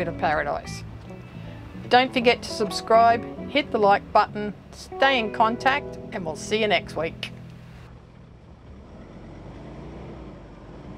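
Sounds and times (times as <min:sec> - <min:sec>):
tyres on wet dirt road: 0:00.0 - 0:10.9
vehicle engine: 0:05.7 - 0:10.9.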